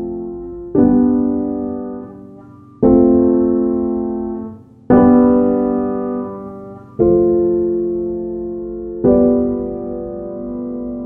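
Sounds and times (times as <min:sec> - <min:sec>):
soft piano chords: 0:00.0 - 0:11.0.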